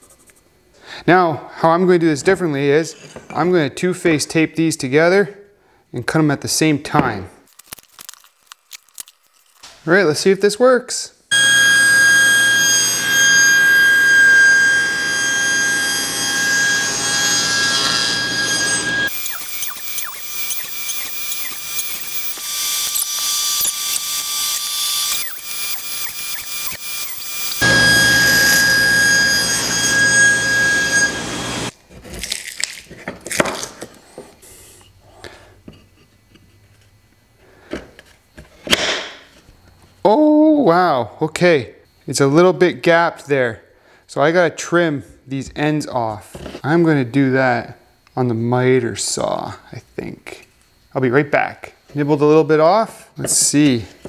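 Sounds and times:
table saw whining: 11.3 - 31.8.

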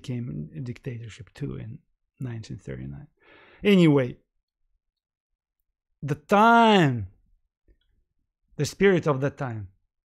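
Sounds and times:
man speaking: 0.0 - 4.3, 6.0 - 7.2, 8.6 - 9.8.

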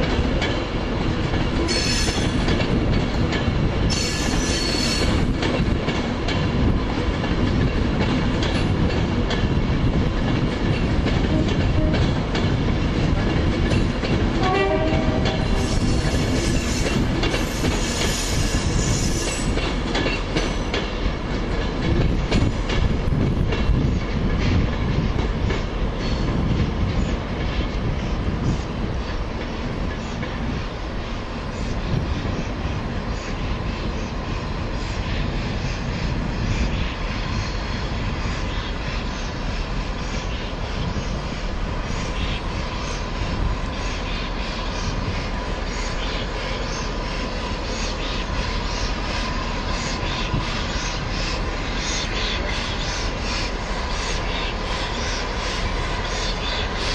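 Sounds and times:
train wheels clattering over rail joints: 0.0 - 32.5
steam hissing: 15.4 - 19.6.

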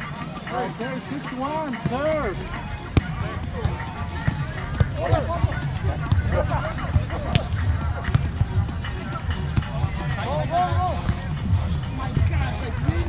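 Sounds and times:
background music: 0.0 - 13.0
voices: 0.0 - 13.0
volleyball being hit: 7.3 - 8.4.

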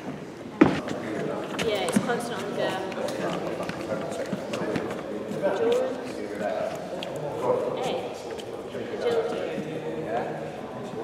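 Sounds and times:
footsteps on hall floor: 0.0 - 9.8
overlapping chatter of voices: 0.0 - 11.0.

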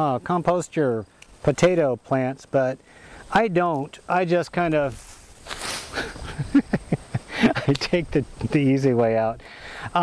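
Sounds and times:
rustle of leafy vines: 2.8 - 8.9
person laughing: 5.8 - 7.8.

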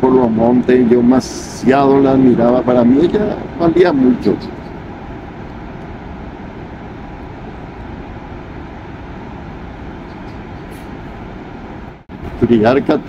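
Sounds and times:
waterfall roaring: 0.0 - 13.0.

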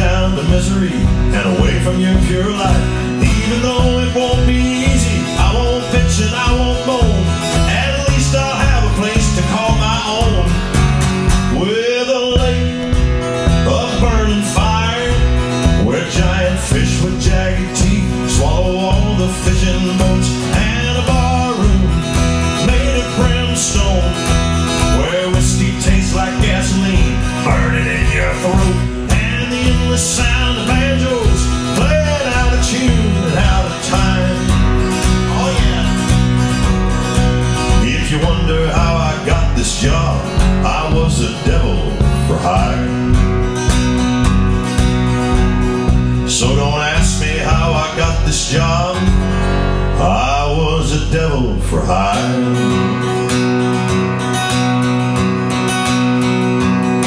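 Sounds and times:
man singing: 0.0 - 43.4, 46.2 - 53.2
acoustic guitar strumming: 0.0 - 57.0.

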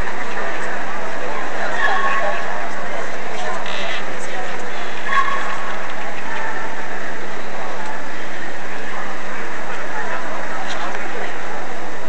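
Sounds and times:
faint indistinct voices: 0.0 - 12.0
low hum: 0.0 - 12.0.

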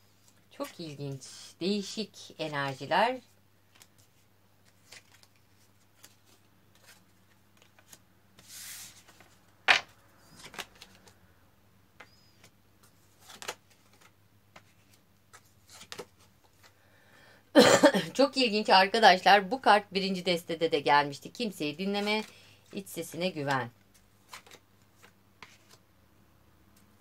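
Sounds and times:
cards tapping on wooden table: 9.7 - 9.9.

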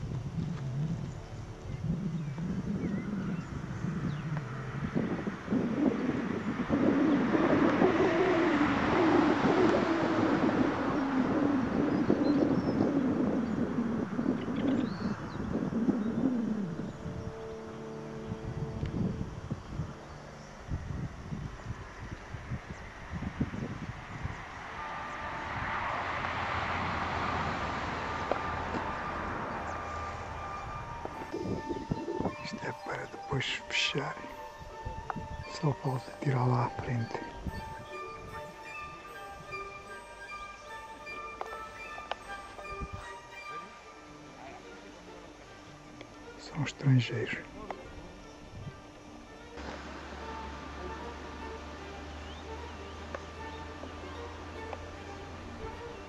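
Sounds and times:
vehicle passing on road: 0.0 - 56.0.

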